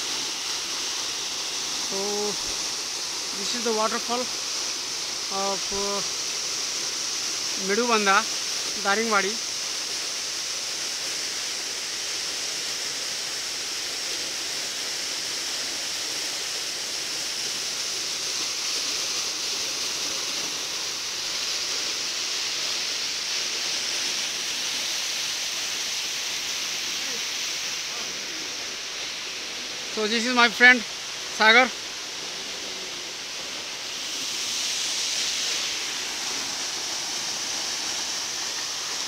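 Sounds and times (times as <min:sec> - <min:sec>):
waterfall splashing into pool: 0:00.0 - 0:39.0.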